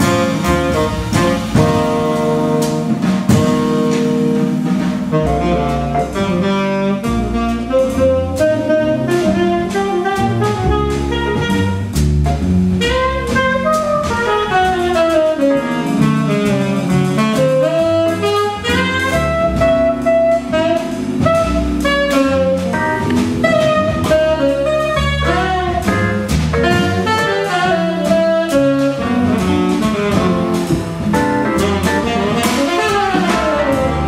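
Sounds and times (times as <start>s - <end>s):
drum kit with cymbals: 0.0s - 34.0s
tenor saxophone jazz solo: 0.0s - 34.0s.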